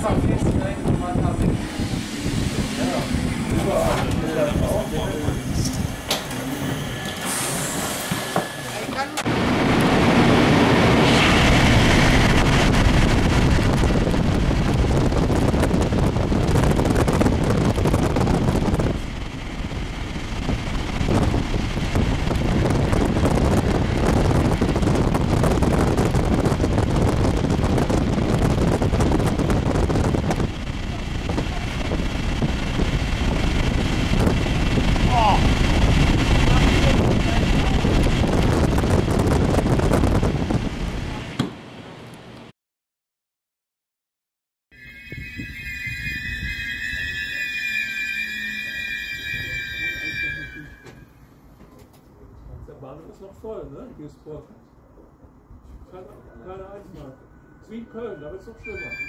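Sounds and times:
train rolling and wind noise: 0.0 - 42.5, 44.7 - 59.0.

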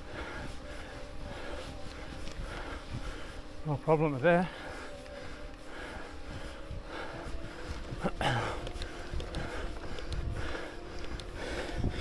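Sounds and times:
cyclist breathing hard: 0.0 - 12.0
wind and road noise: 0.0 - 12.0.

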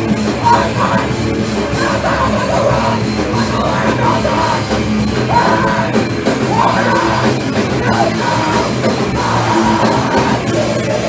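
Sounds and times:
heavy rock band playing: 0.0 - 11.0
person yelling vocals: 1.8 - 4.6, 5.3 - 11.0.

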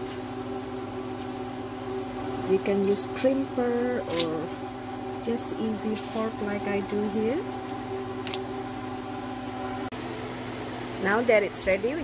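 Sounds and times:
appliance motor hum: 0.0 - 12.0.

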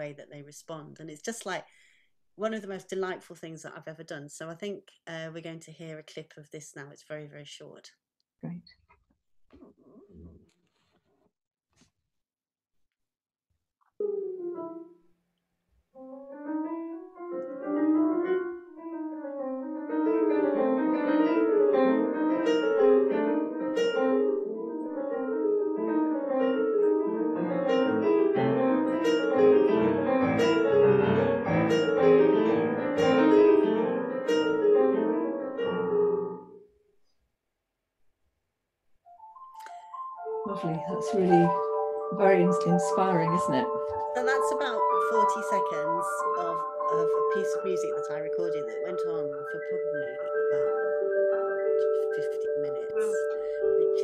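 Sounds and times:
two pianos improvising: 16.0 - 36.6, 39.9 - 54.0.

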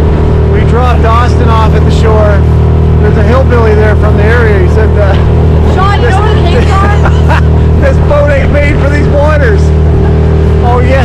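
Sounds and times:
small boat motor running: 0.0 - 11.0
people talking: 0.5 - 2.4, 3.0 - 9.7, 10.6 - 11.0.

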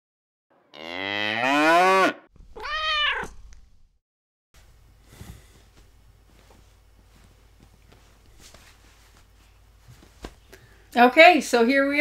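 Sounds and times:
cat meowing: 2.6 - 3.4.

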